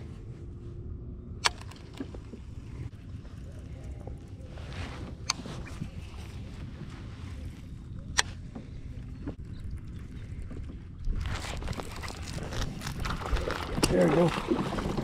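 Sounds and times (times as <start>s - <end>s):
wind and water rumble: 0.0s - 15.0s.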